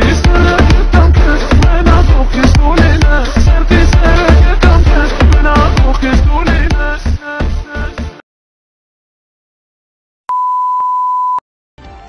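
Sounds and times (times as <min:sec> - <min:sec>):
steady single-pitch beep: 0:10.3 - 0:11.4.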